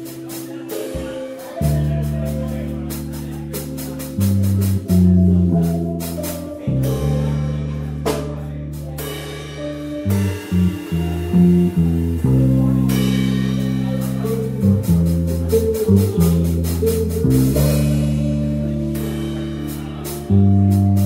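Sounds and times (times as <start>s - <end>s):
cymbal pattern: 0.0s - 21.0s
double bass notes: 0.0s - 21.0s.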